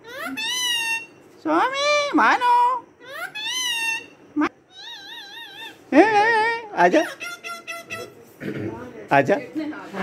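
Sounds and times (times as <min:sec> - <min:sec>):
parakeet mimicking cat meow: 0:00.0 - 0:08.2
parakeet call: 0:00.1 - 0:02.4, 0:03.0 - 0:08.2.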